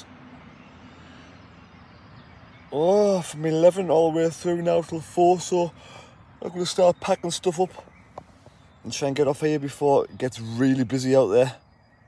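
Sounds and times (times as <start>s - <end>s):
faint road traffic: 0.0s - 12.0s.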